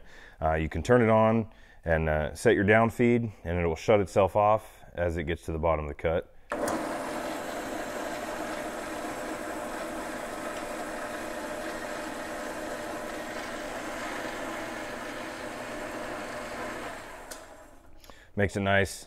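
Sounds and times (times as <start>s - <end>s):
band saw running: 6.5s - 17.9s
motor winding down: 6.5s - 18.0s.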